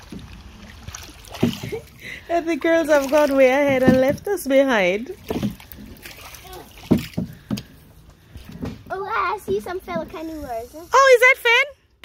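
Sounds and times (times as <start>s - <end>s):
canoe paddles dipping in water: 0.0s - 10.5s
paddle splashes: 0.0s - 11.2s.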